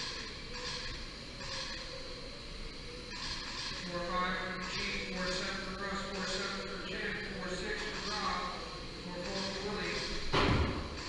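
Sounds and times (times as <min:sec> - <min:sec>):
loud thump: 0:10.3 - 0:10.9.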